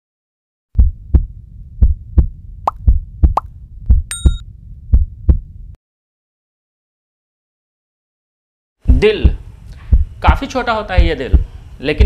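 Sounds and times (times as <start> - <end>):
heartbeat thumps: 0.8 - 5.8, 8.8 - 11.7
low hum: 0.8 - 5.8
bright ding: 4.1 - 4.4.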